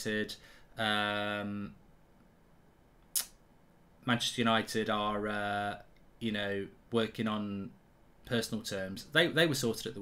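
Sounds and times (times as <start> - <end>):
short sharp click: 3.0 - 3.4.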